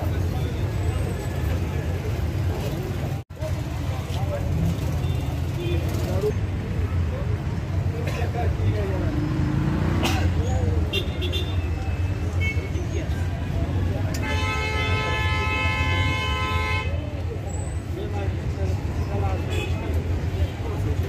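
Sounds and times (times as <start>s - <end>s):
road traffic rumble: 0.0s - 21.0s
voices: 0.0s - 21.0s
vehicle horn blast: 14.2s - 17.0s.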